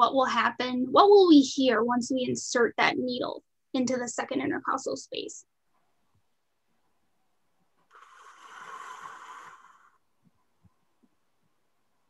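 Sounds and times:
person breathing out: 7.9 - 10.0.

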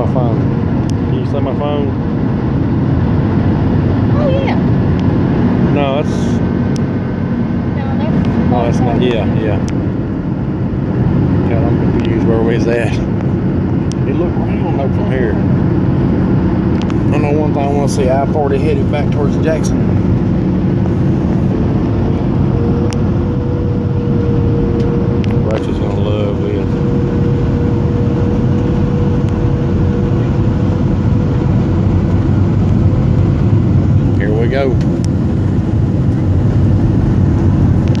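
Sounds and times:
jet engines and airflow roar: 0.0 - 38.0
steady hum tone: 0.0 - 38.0.

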